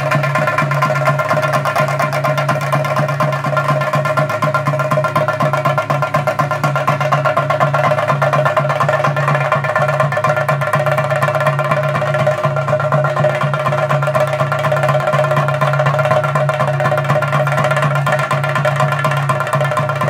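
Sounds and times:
drums played with sticks: 0.0 - 20.0
steady held tone: 0.0 - 20.0.

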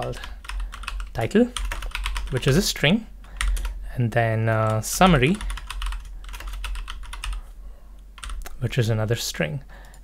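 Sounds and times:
computer keyboard typing: 0.0 - 2.6, 3.4 - 3.8, 4.6 - 7.4, 8.2 - 8.6.

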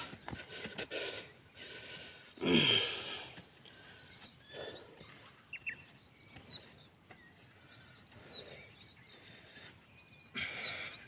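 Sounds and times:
bird chirps: 0.0 - 11.0
faint outdoor background noise: 0.0 - 11.0.

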